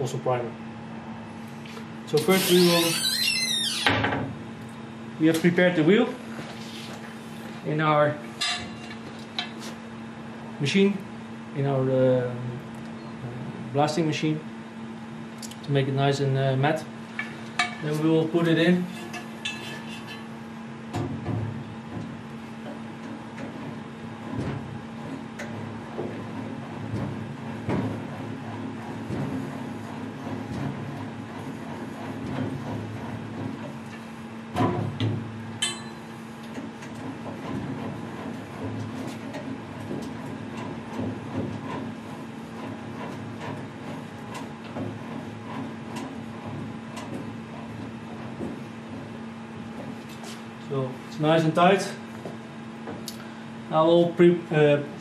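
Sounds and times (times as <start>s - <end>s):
steady hum: 0.0s - 55.0s
metal knocks and scrapes: 17.2s - 20.3s.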